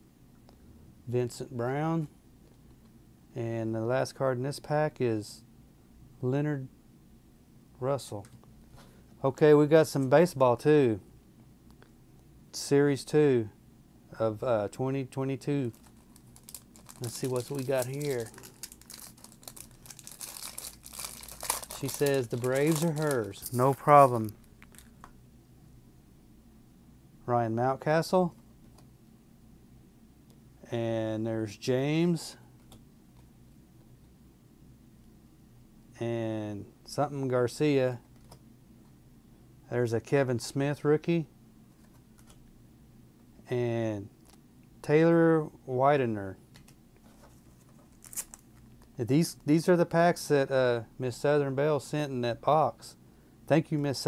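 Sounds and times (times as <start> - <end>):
plastic wrapper crinkling: 15.7 - 25.0, 47.7 - 48.9.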